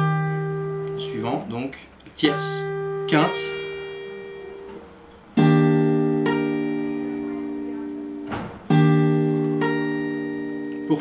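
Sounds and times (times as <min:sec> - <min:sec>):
acoustic guitar chord fingerpicked: 0:00.0 - 0:11.0.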